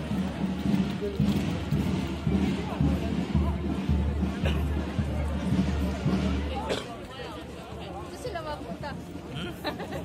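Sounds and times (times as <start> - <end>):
crowd chatter: 0.0 - 10.0
outdoor band music: 0.0 - 10.0.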